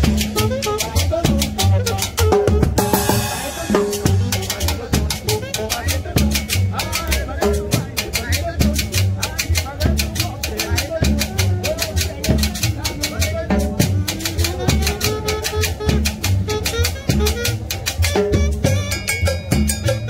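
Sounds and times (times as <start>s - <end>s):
drum kit and bass: 0.0s - 20.0s
shaker percussion rhythm: 0.0s - 20.0s.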